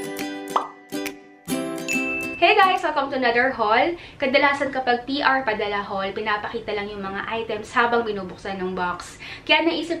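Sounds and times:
jingle music with pitched notes: 0.0 - 2.9.

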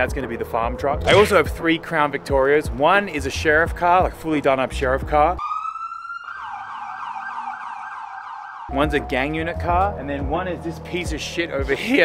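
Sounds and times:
police siren wailing and yelping: 5.4 - 8.7.

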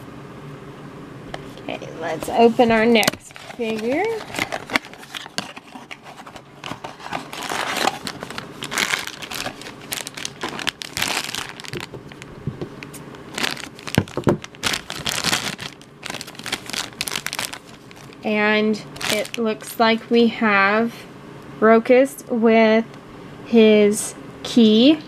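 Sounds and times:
plastic bag crinkling: 2.1 - 19.6.

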